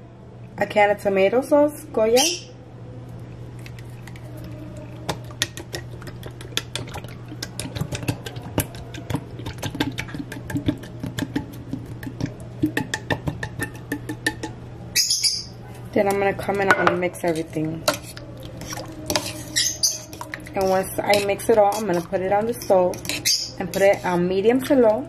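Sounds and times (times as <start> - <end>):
steady low hum: 0.0 - 25.0
can and spoon tapping metal pot: 5.0 - 14.6.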